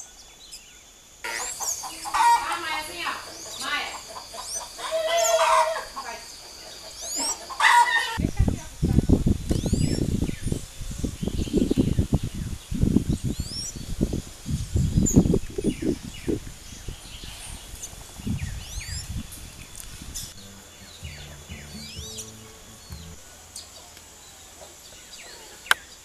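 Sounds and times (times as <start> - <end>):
bird chirps: 0.0 - 8.4, 9.4 - 26.0
wind buffeting microphone: 8.2 - 23.4.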